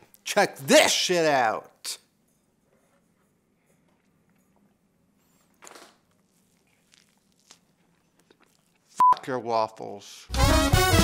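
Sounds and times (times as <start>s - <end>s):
soft chewing clicks: 6.1s - 8.9s
wet bite or slurp: 6.3s - 8.9s.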